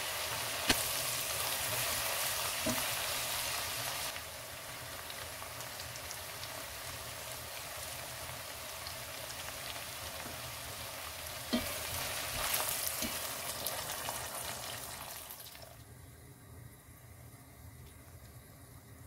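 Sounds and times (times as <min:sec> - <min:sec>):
food sizzling in hot oil: 0:00.0 - 0:15.8.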